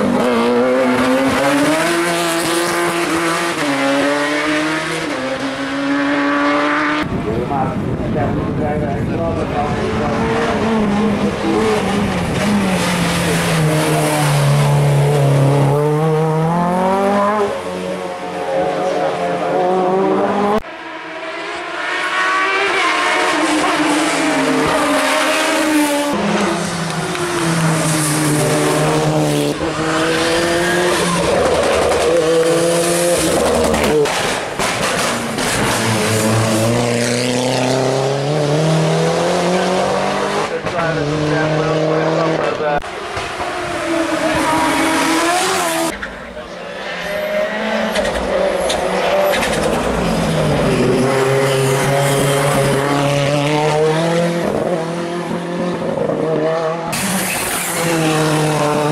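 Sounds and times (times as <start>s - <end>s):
race car engines revving: 0.0s - 58.9s.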